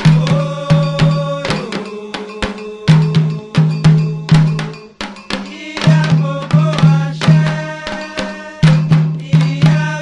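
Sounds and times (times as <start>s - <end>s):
hand drums: 0.0s - 10.0s.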